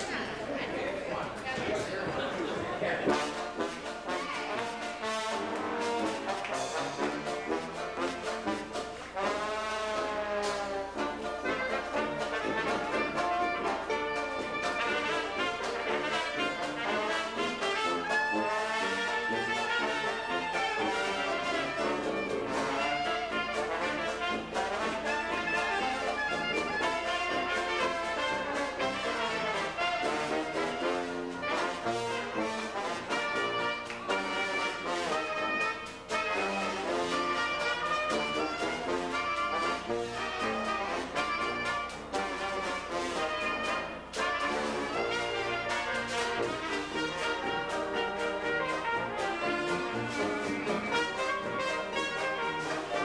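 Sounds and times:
jazz band playing: 0.0 - 53.0
trombone: 1.6 - 53.0
clarinet: 3.0 - 53.0.

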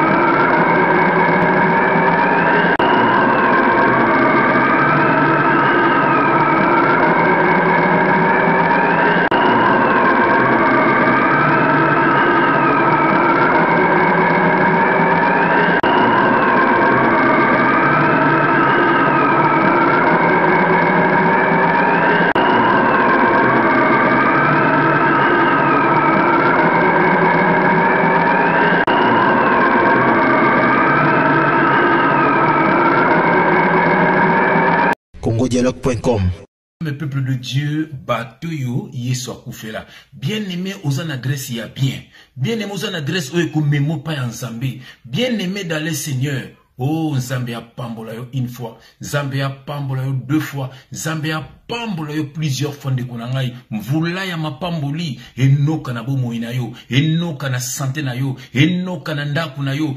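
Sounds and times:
layered electronic drone: 0.0 - 35.0
siren-like wail: 0.0 - 35.0, 38.5 - 59.9.

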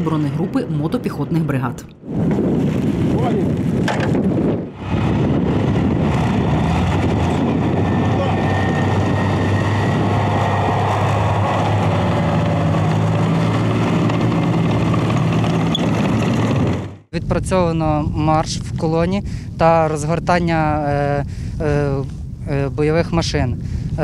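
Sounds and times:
tracked vehicle driving over snow: 3.6 - 17.1
diesel engine running: 4.6 - 17.1.

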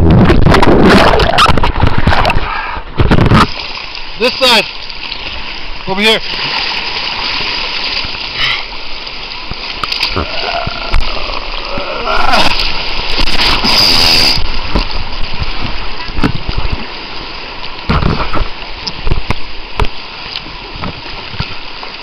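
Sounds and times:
water slapping microphone: 0.0 - 22.0.

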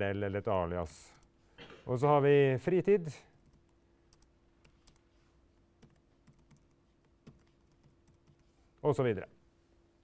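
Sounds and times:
low steady hum: 0.0 - 10.0
computer keyboard typing: 3.3 - 5.1, 5.8 - 8.6.

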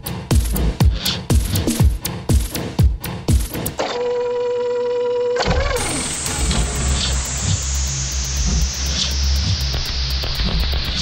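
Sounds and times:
held synth tone: 3.8 - 8.4
descending noise sweep: 5.4 - 10.0
low pulsing bass: 5.4 - 11.0.

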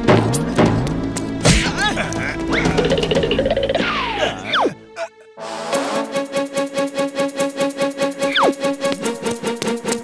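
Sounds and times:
cartoon background music: 0.0 - 10.0.

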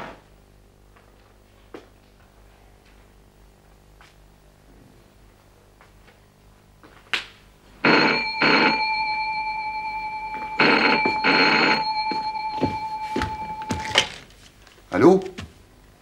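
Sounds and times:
telephone bell ringing: 7.8 - 14.2.

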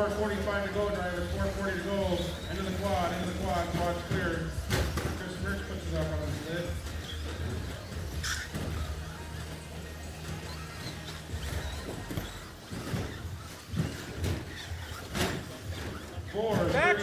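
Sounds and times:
electric rc trucks racing: 0.0 - 17.0.

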